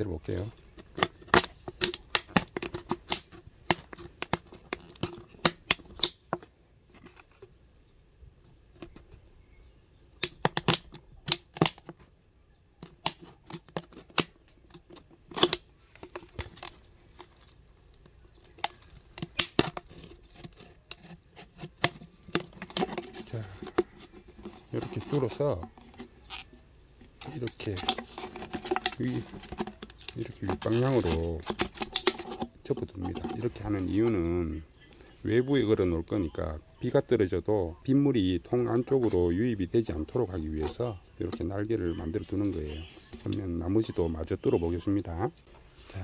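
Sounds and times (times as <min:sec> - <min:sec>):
knife cutting plastic bottle: 0:00.7 - 0:06.3, 0:10.2 - 0:12.0, 0:12.8 - 0:17.3, 0:18.5 - 0:34.2.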